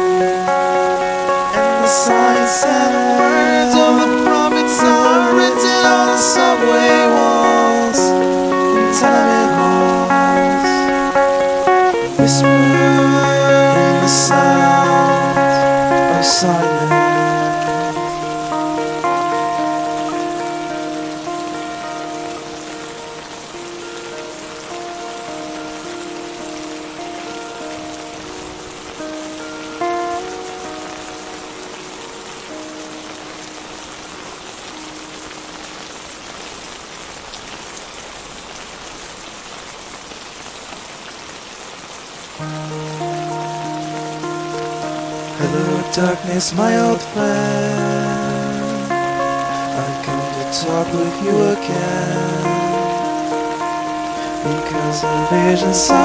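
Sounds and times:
sustained instrumental notes: 0.0s - 34.2s, 42.4s - 56.0s
steady rain hiss: 0.0s - 56.0s.

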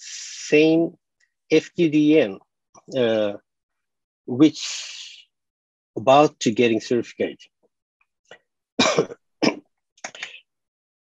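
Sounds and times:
person coughing: 8.8s - 10.2s.

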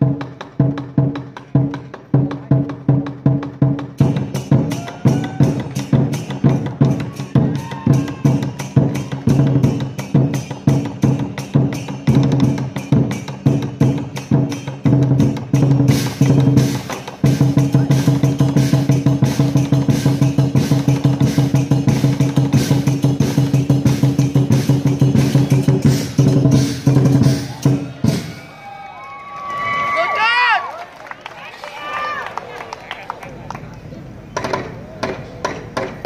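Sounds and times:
big drum fast roll: 0.0s - 28.6s
cymbals clashing: 4.0s - 28.8s.

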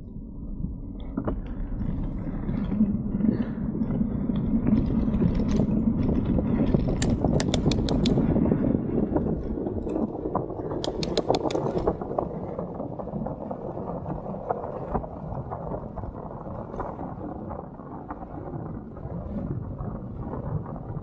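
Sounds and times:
bicycle tyres on road: 0.0s - 21.0s
wind on microphone: 0.0s - 21.0s
rapid clicking from bike: 1.0s - 20.7s.

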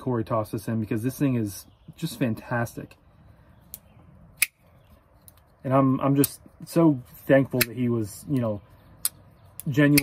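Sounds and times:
knife blade snapping open: 9.0s - 10.0s.

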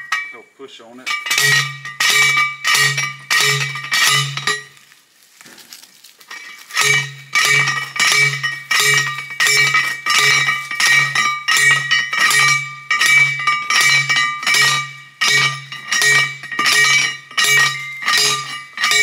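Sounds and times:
post driver clanking on metal post: 1.1s - 4.6s.

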